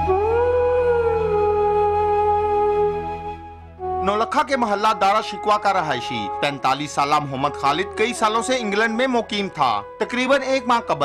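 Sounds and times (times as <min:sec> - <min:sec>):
slow sad music: 0:00.0 - 0:11.0.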